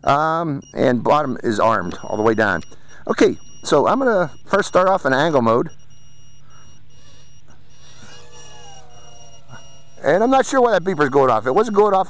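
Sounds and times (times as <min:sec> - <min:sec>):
high electronic beeps: 0:00.0 - 0:12.0
small drone motors whining: 0:04.7 - 0:12.0.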